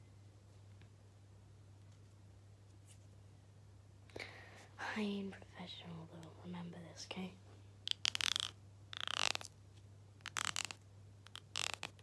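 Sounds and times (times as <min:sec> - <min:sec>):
comb teeth raked: 0:07.9 - 0:09.6, 0:10.2 - 0:12.0.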